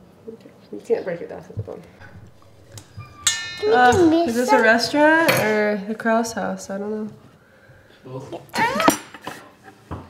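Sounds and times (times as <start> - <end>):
utensil clinking on metal bowl: 2.0 - 4.5
metal bowl ringing: 2.0 - 5.6.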